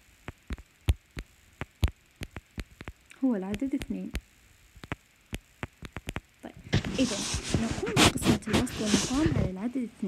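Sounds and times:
stylus tapping on glass screen: 0.3 - 3.0, 4.8 - 6.3.

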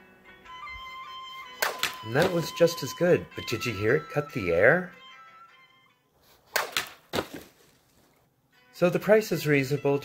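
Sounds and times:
musical note: 0.5 - 5.6.

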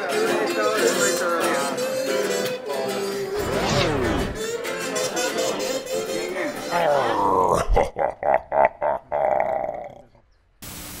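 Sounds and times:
tv static hiss: 10.6 - 11.0.

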